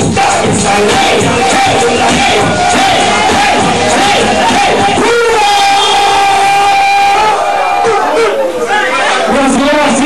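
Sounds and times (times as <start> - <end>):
music with steady bass: 0.0 - 7.4
man shouting over sound system: 1.3 - 10.0.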